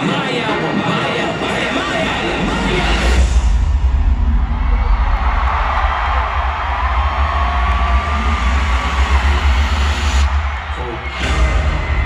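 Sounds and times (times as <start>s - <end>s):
large crowd noise: 0.0s - 12.0s
deep bass pulsing: 2.1s - 12.0s.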